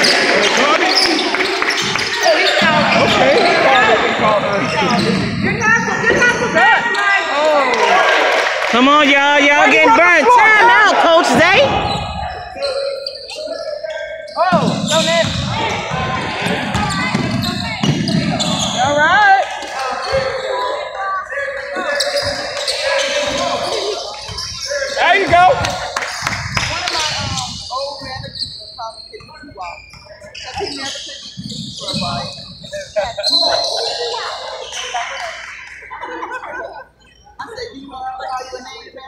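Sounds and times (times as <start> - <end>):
echoing voices: 0.0 - 39.0
basketball bouncing on wooden floor: 16.4 - 18.6.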